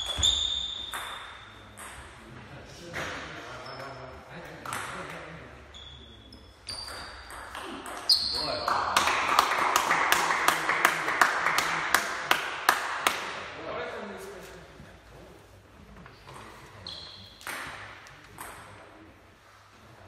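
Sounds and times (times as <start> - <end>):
short high squeaks: 0.0 - 1.6, 5.7 - 7.3, 16.8 - 17.4.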